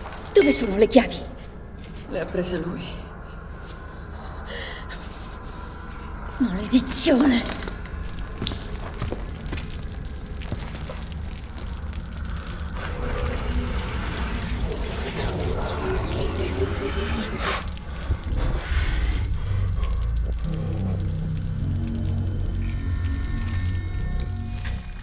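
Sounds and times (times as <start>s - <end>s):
low rumbling drone: 0.0s - 25.0s
liquid spilling: 7.7s - 25.0s.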